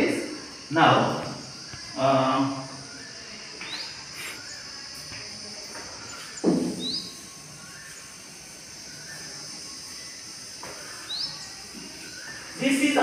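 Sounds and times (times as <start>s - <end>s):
birds chirping: 0.0s - 13.0s
steady high hiss: 0.0s - 13.0s.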